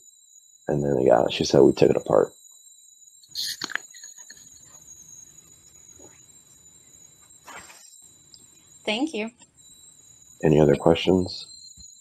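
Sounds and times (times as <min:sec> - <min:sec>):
high-pitched electronic whine: 0:00.0 - 0:12.0.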